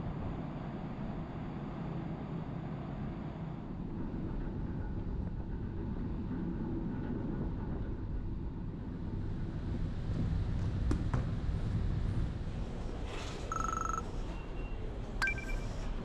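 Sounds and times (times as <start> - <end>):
wind: 0.0 - 16.0.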